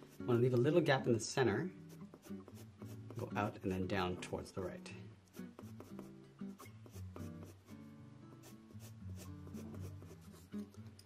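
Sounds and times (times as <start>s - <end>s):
pencil scratching on paper: 0.0s - 0.4s, 1.8s - 3.8s, 5.3s - 7.8s, 8.4s - 10.7s
soft background music: 0.0s - 11.0s.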